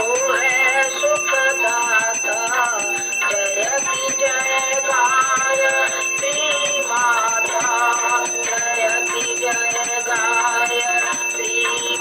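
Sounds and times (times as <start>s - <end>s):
rhythmic jingling percussion: 0.0s - 12.0s
ringing bells: 0.0s - 12.0s.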